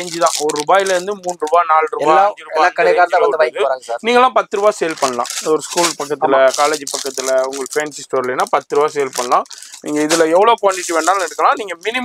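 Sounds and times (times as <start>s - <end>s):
plastic wrapping crinkling: 0.0s - 1.6s, 4.6s - 12.0s
man talking: 0.0s - 12.0s.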